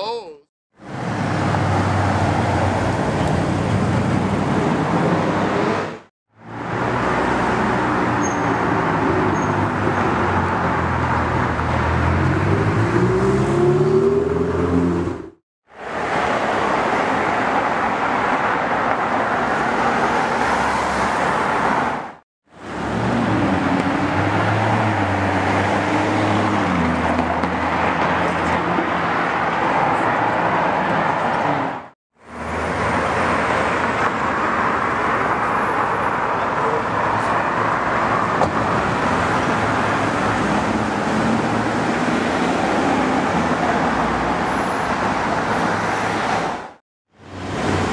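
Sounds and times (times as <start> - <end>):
street traffic: 0.0 - 47.9.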